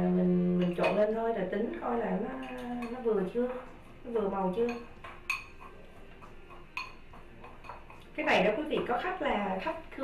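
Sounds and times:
spoon clinking against bowl: 2.4 - 3.1, 4.5 - 8.1.

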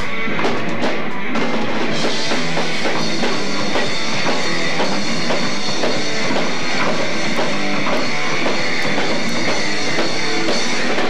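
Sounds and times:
drum kit steady beat: 0.0 - 11.0
electric guitars: 0.0 - 11.0.

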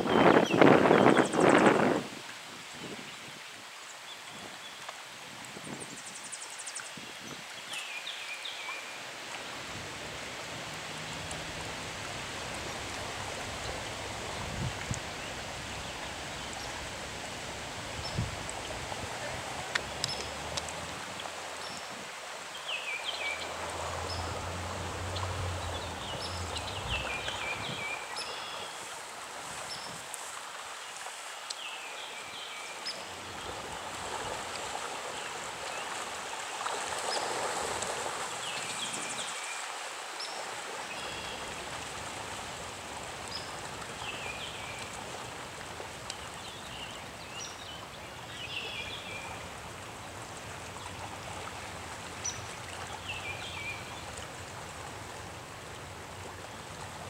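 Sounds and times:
floodwater flowing and rippling: 0.0 - 57.0.

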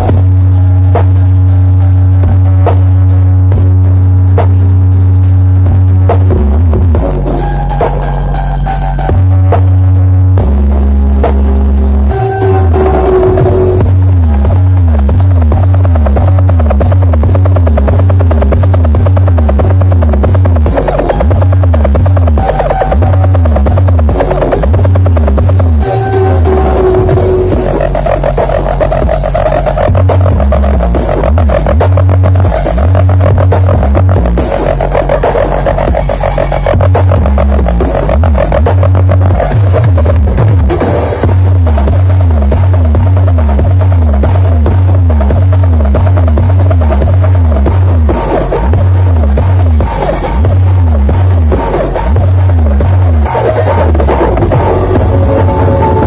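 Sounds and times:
electronic dance music: 0.0 - 56.0
heavy pulsing bass: 0.0 - 56.0
swooping tone: 25.7 - 32.8, 53.2 - 56.0.

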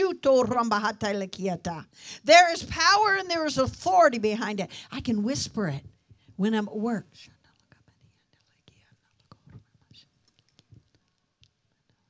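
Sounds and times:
woman whispering: 7.1 - 10.1.

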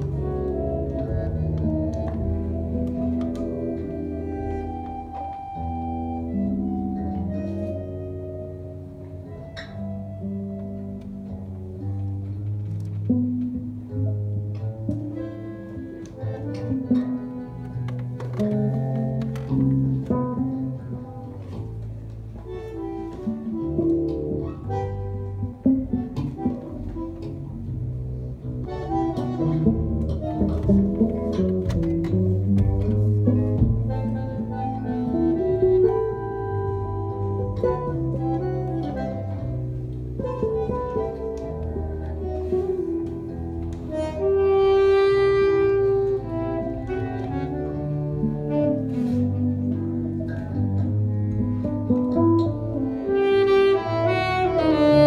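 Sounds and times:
bandoneon melody: 0.0 - 55.0
electric bass: 0.0 - 55.0
guitar: 0.0 - 55.0.

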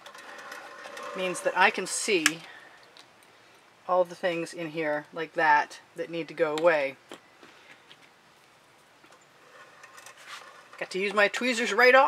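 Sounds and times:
woman speaking: 1.2 - 2.5, 3.9 - 7.0, 10.8 - 12.0
canvas rubbing and scraping: 9.4 - 10.9.

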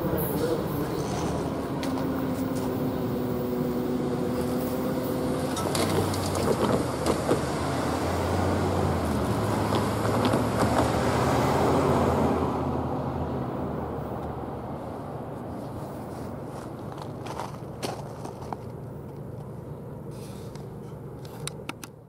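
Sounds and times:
truck passing: 0.0 - 21.2
trucks driving: 0.0 - 22.0.

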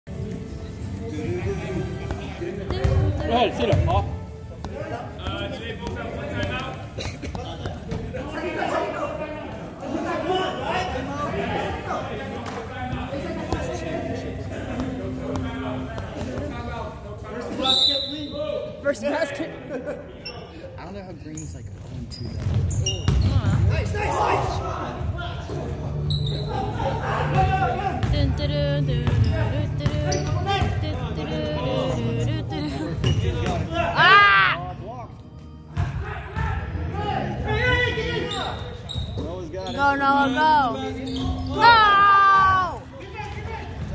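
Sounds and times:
background music: 0.1 - 7.2, 24.0 - 38.5
echoing voices: 0.1 - 17.2, 23.6 - 38.5, 39.6 - 43.9
players calling out: 26.0 - 34.8.

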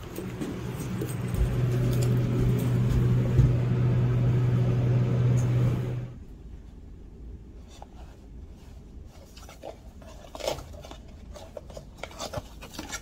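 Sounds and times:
elevator hum: 0.0 - 6.3
dull low thumps: 1.3 - 4.8.

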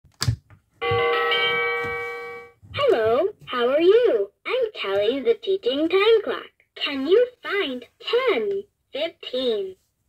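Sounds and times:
electronic bell chime: 0.8 - 2.6.

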